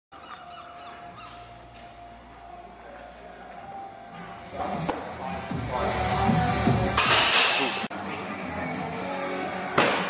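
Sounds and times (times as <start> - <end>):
birds calling: 0.1 - 1.8.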